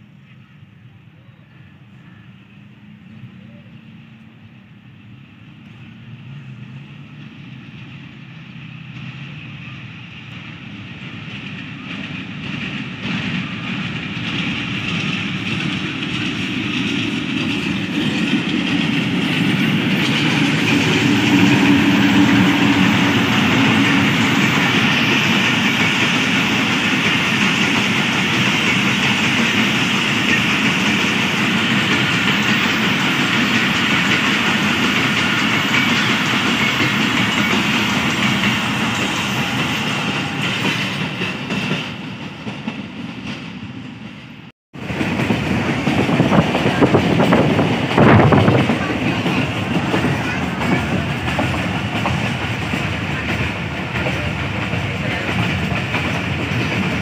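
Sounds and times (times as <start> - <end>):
diesel locomotive engine: 0.0 - 57.0
train wheels on rails: 2.9 - 57.0.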